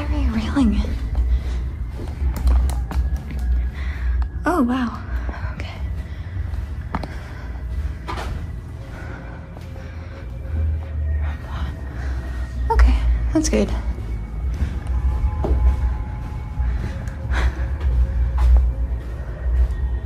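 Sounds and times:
muffled footsteps on carpet: 0.0s - 20.0s.

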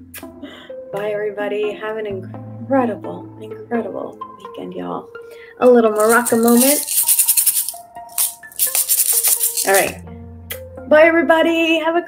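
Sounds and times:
maracas rattling: 6.0s - 10.0s.

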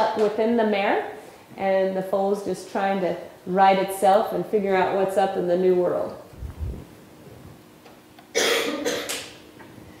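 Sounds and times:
person coughing: 8.3s - 9.2s.

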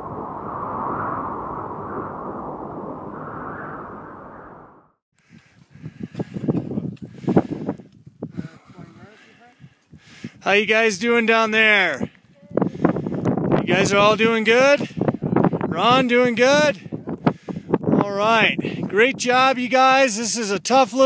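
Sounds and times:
wind rushing: 0.0s - 9.0s, 9.6s - 19.0s.

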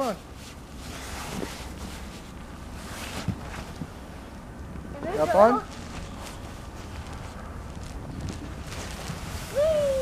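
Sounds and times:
wind rumbling on microphone: 0.2s - 10.0s
plastic sled sliding over snow: 5.0s - 10.0s.

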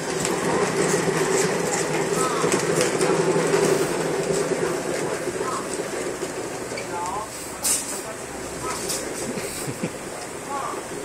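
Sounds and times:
exercise wheel rolling rumble: 0.0s - 11.0s.

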